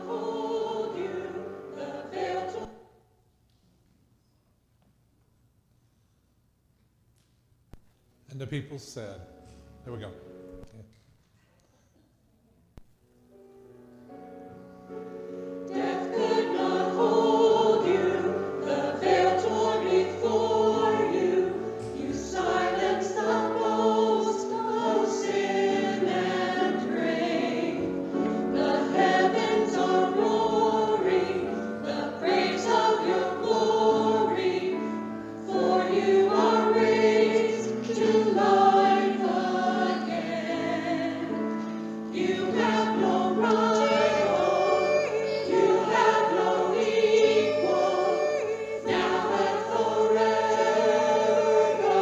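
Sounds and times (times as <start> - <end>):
choir singing with accompaniment: 0.0 - 3.1, 14.1 - 52.0.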